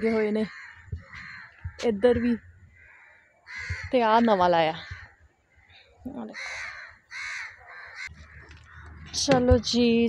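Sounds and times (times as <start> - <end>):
bird calling: 0.0 - 10.0.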